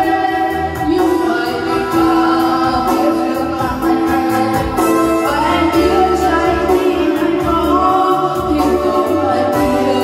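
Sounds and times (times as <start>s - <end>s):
electronic keyboard with beat: 0.0s - 10.0s
woman singing through microphone: 0.0s - 10.0s.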